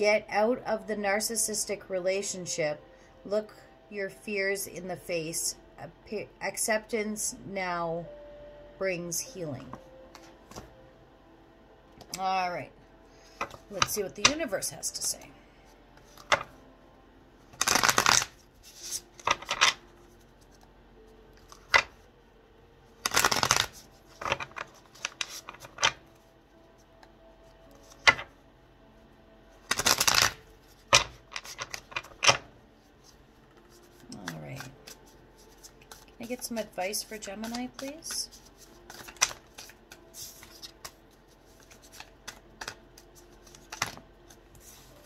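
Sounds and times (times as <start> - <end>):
deck of cards riffling: 16.2 - 16.5, 17.5 - 19.8, 23.0 - 26.0, 29.7 - 32.4, 33.8 - 44.9
cards snapping: 17.6 - 19.8, 23.0 - 26.0, 29.7 - 32.4, 37.4 - 41.0, 41.6 - 42.8, 43.4 - 44.0.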